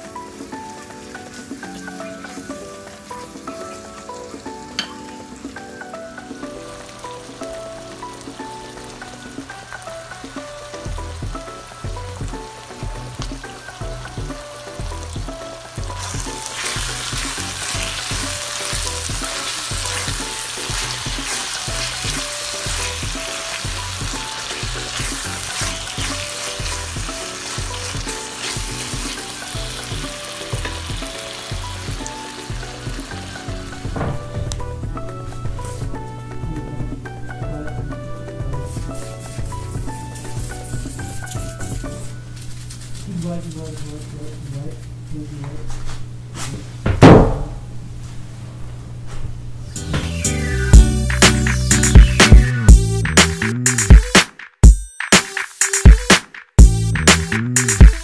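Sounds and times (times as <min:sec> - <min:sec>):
meat sizzling in a skillet: 0:00.0 - 0:33.9, 0:38.5 - 0:42.8
background music with steady beat: 0:00.0 - 0:42.6, 0:49.8 - 0:58.0
spatula stirring: 0:16.0 - 0:31.0, 0:38.6 - 0:43.5.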